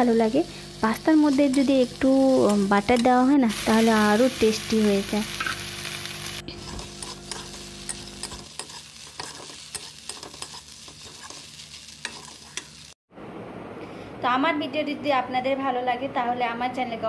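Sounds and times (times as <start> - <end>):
pasta sizzling in a pan: 0.0 - 13.0
metal spatula scraping a pan: 6.5 - 12.8.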